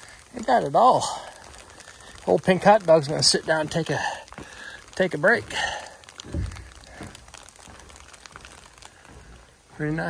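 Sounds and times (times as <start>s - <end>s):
clothing and gear rustling: 0.0s - 10.0s
soft low thump: 6.3s - 7.2s.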